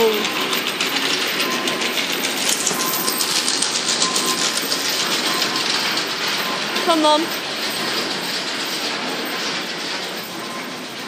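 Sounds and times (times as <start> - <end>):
mill machinery clattering: 0.0 - 11.0.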